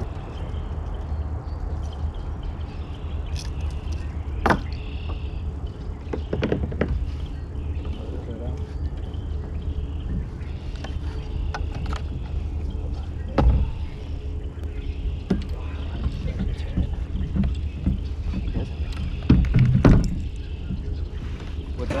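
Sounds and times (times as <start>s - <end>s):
low rumble: 0.0s - 22.0s
heavy thumps: 13.3s - 14.4s, 15.2s - 21.0s.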